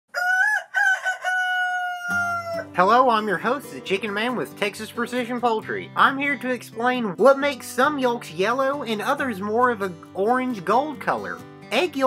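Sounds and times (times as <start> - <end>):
rooster crowing: 0.1 - 2.8.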